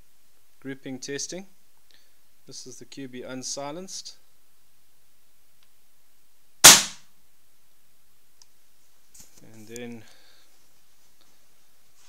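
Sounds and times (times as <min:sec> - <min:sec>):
air rifle shot: 0:06.6 - 0:07.0.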